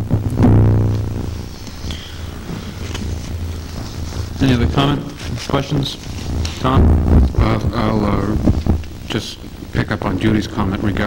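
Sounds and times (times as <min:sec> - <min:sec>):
low buzzing hum: 0:00.0 - 0:11.0.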